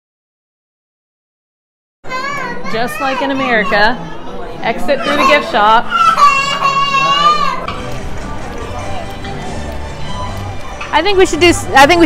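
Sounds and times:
children chattering and calling out: 2.0s - 12.0s.

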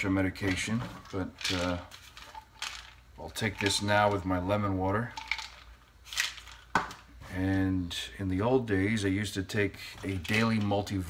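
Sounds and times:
handling noises: 0.0s - 4.3s, 5.0s - 7.4s, 9.9s - 11.0s.

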